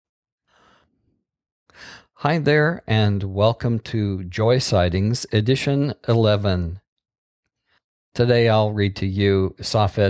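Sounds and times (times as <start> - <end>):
person breathing in: 0.5 - 1.0, 1.7 - 2.2.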